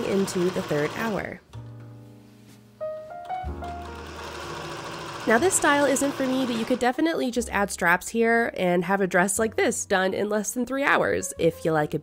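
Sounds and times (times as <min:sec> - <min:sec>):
sewing machine running: 0:00.0 - 0:01.3, 0:03.7 - 0:06.9
background music: 0:00.0 - 0:12.0.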